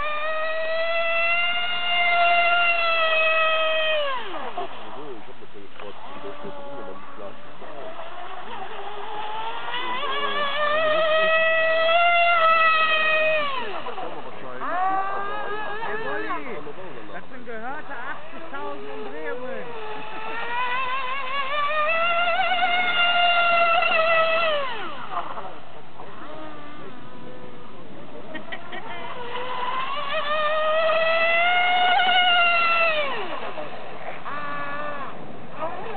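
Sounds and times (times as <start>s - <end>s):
model speedboat motor whine: 0.0s - 35.9s.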